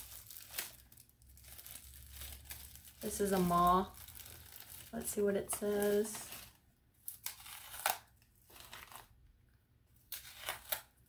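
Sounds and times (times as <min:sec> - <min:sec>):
packaging rustling and crinkling: 0:00.0 - 0:09.2.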